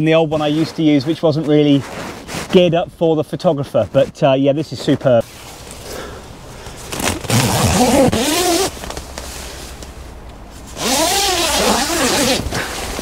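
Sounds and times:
fabric rustling and scraping: 0.0s - 5.9s, 6.7s - 13.0s.

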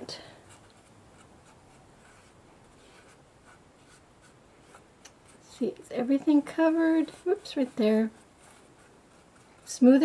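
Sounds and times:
paintbrush scratching: 0.5s - 10.0s.

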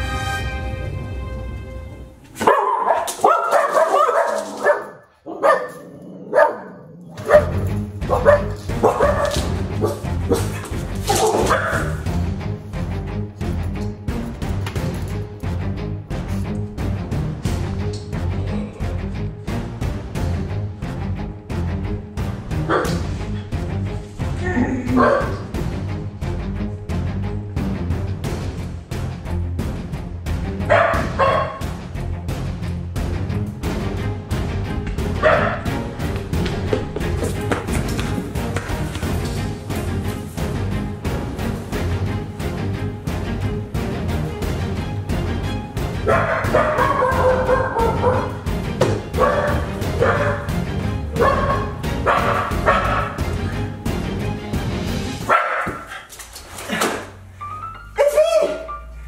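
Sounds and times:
low background music: 0.0s - 59.0s
dogs barking: 2.4s - 12.2s, 22.5s - 23.1s, 24.8s - 25.7s, 30.6s - 31.8s, 35.0s - 36.5s, 45.9s - 53.7s, 55.2s - 56.1s.

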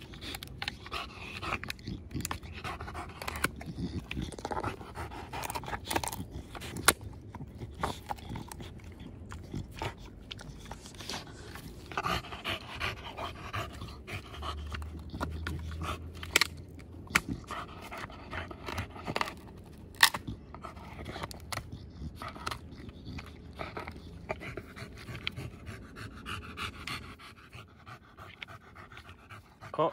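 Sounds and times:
wood cracking under teeth: 0.0s - 11.1s, 14.7s - 25.4s
dog panting: 0.0s - 29.9s.

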